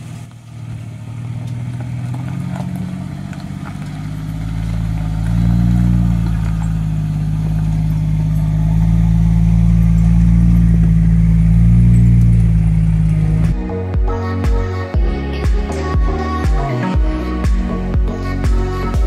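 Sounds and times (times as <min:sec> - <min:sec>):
vehicles driving on dirt track: 0:00.0 - 0:19.0.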